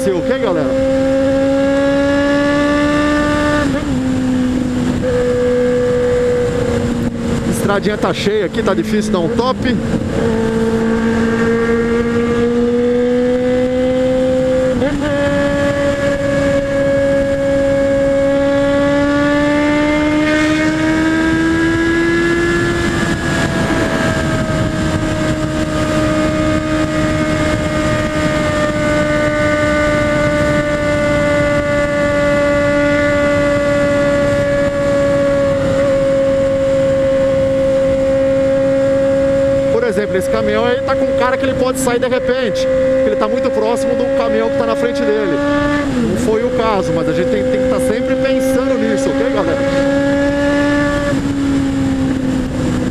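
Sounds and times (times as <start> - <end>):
motorcycle engine accelerating: 0.0 - 52.9
wind rush: 0.0 - 52.9.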